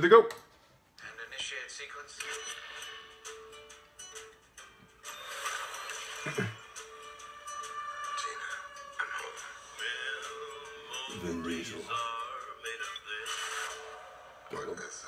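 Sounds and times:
movie trailer music: 2.2s - 15.0s
man laughing: 6.2s - 6.7s.

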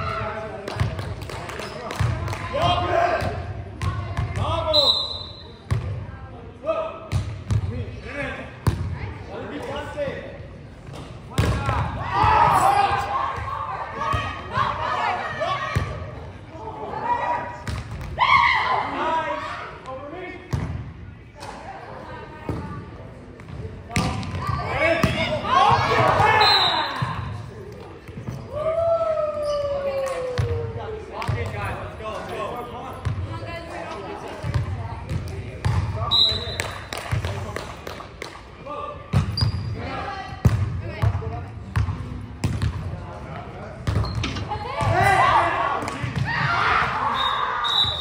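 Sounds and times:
players shouting: 11.5s - 15.9s, 44.5s - 48.0s.

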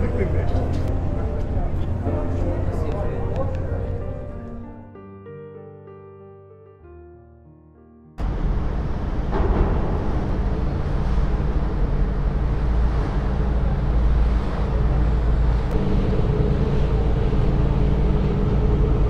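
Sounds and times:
boat engine droning: 0.0s - 4.8s, 8.2s - 19.0s
steady low rumble: 0.0s - 4.8s, 8.2s - 19.0s.

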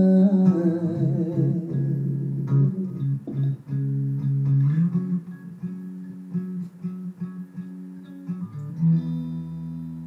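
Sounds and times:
man singing with vibrato: 0.0s - 3.5s
guitar accompaniment: 0.0s - 10.0s.

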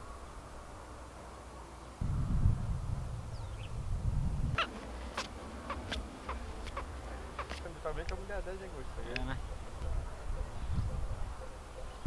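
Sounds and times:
bird giving short calls: 4.6s - 7.7s.

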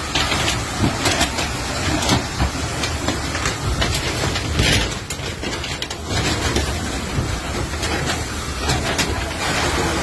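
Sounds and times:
fire crackling and popping: 0.0s - 10.0s
fire roaring: 0.0s - 10.0s.

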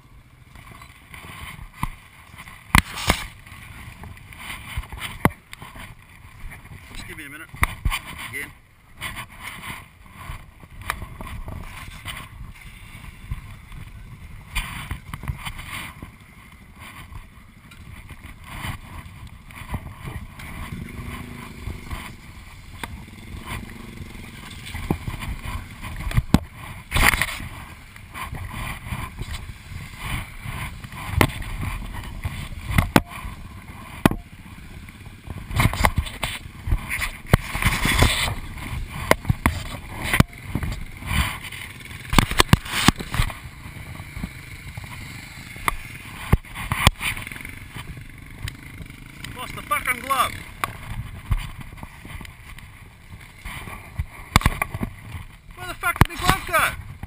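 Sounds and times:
distant dirt bike engines: 0.0s - 57.0s
gear rustling against camera: 0.6s - 57.0s.

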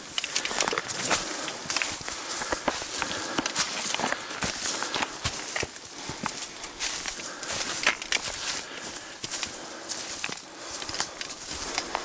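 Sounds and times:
footsteps crunching on stony trail: 0.0s - 12.0s
trekking poles clicking on rock: 0.0s - 12.0s.

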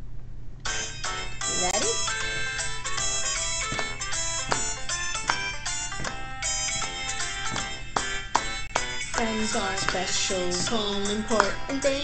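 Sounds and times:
bright pitched instrumental notes: 0.7s - 12.0s.

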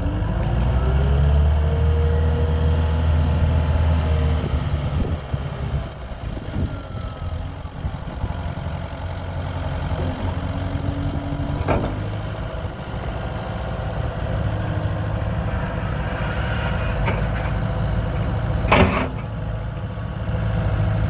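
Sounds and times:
diesel engine running: 0.0s - 21.0s
rising whine: 10.2s - 18.7s.

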